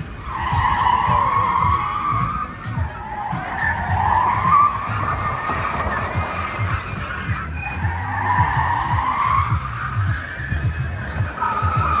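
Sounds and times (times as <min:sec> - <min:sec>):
tyres squealing: 0:00.0 - 0:12.0.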